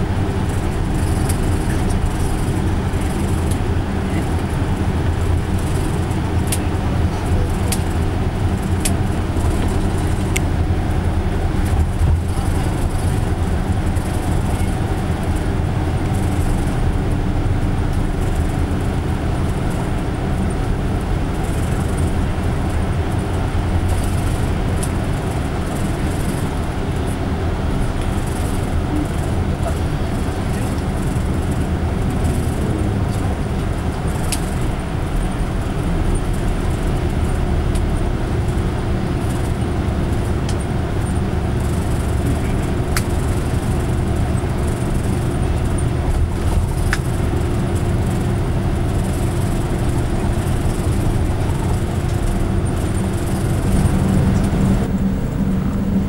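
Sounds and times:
bus engine drone: 0.0 - 56.0
faint steady whine: 0.0 - 56.0
road noise: 0.0 - 56.0.

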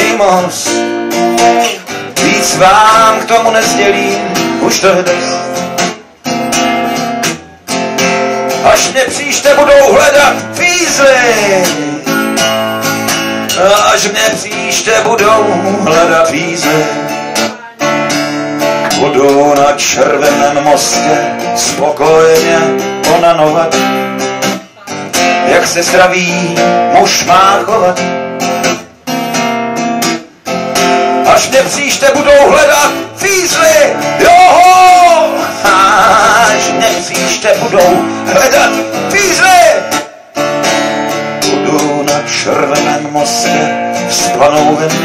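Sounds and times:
person singing: 0.0 - 7.7, 13.4 - 28.1, 31.2 - 40.1, 41.4 - 45.0
acoustic guitar strumming chords: 0.0 - 45.0.

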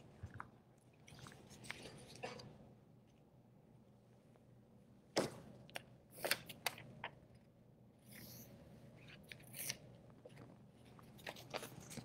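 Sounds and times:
low room hum: 0.0 - 12.0.

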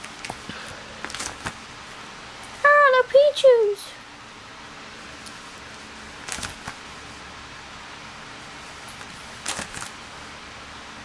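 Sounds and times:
plastic binder pages rustling: 0.0 - 1.7, 5.2 - 6.8, 8.6 - 10.0
electric desk fan hum: 0.0 - 11.0.

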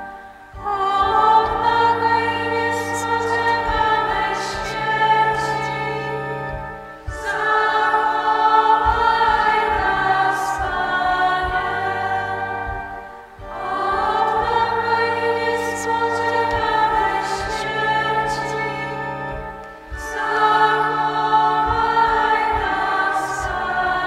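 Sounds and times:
choir singing: 0.0 - 24.0.

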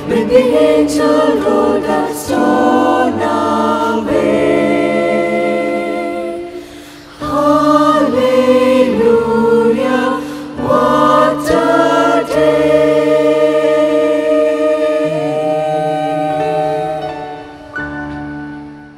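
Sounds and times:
mixed choir singing gospel: 0.0 - 17.7.

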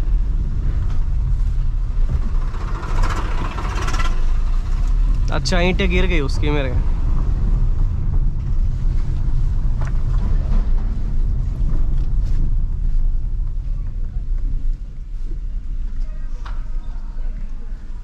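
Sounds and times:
car engine and tyres rumbling: 0.0 - 18.0.

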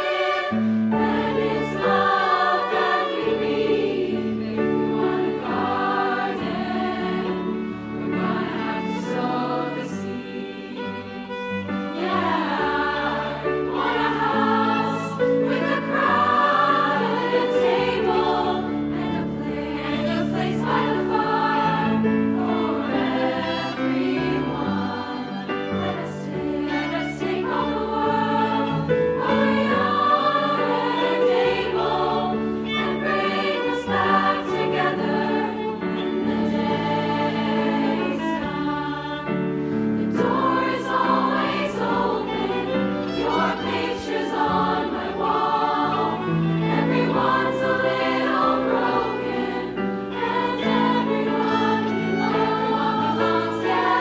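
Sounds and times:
choir singing in harmony: 0.0 - 54.0.

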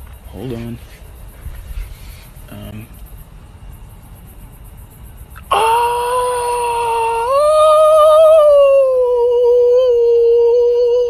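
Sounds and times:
faint crickets chirping: 0.0 - 11.0
loud steady scream-like wail: 5.5 - 11.0.

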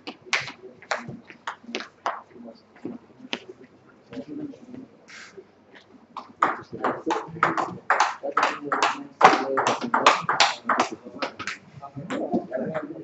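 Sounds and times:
table tennis ball hits: 6.4 - 11.6.

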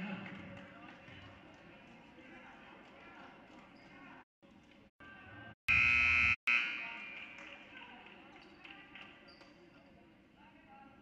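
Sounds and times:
scoreboard buzzer blast: 5.7 - 6.8.

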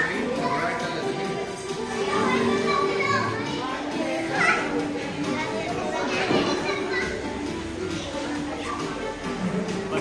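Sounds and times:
music with held notes: 0.0 - 10.0
people talking excitedly: 0.0 - 10.0.

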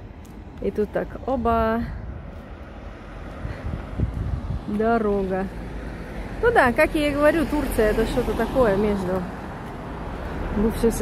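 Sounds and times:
vehicle engines rumbling: 0.0 - 11.0
wind buffeting microphone: 0.0 - 11.0.

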